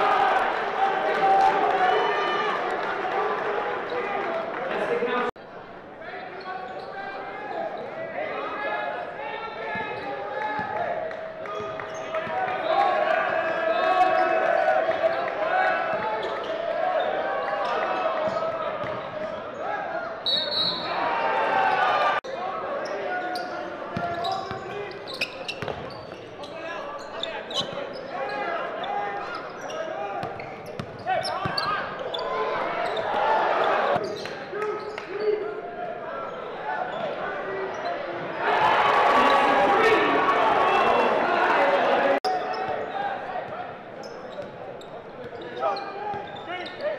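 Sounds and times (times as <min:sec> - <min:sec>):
crowd and player voices: 0:00.0 - 0:46.9
high whistle: 0:20.2 - 0:21.0.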